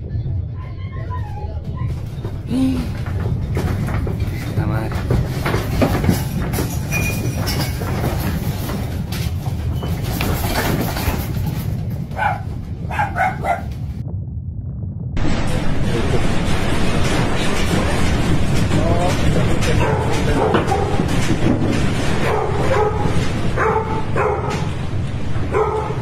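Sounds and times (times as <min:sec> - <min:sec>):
deep earthquake rumble: 0:00.0 - 0:26.0
walls and contents rattling: 0:00.3 - 0:14.1, 0:15.2 - 0:26.0
person's voice: 0:02.5 - 0:03.0, 0:04.4 - 0:05.0.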